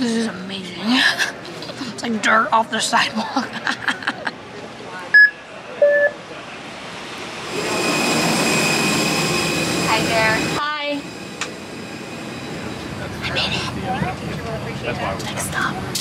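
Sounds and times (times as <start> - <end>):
airliner hiss and whine: 1.1 - 16.0
scanner beeps: 5.2 - 6.2, 7.4 - 14.2.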